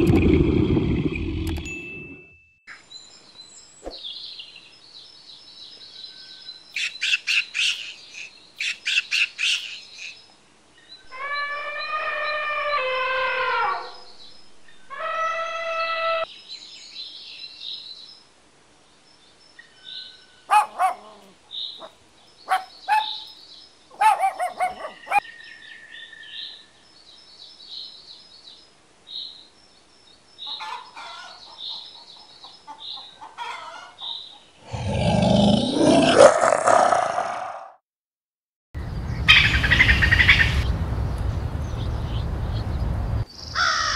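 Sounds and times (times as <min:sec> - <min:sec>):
long pitched animal calls: 0:11.1 - 0:14.0
loud rough animal noise: 0:34.6 - 0:37.8.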